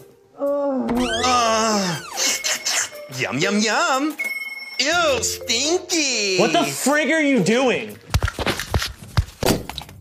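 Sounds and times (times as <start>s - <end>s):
person making animal-like cry: 0.4s - 2.4s.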